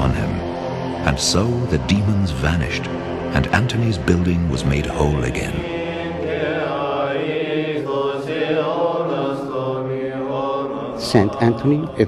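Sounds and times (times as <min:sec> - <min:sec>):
voices chanting: 0:00.0 - 0:12.0.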